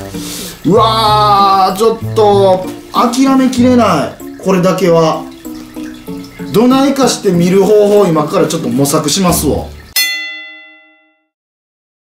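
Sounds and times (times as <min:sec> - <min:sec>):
metallic bell ding: 0:09.9 - 0:11.4.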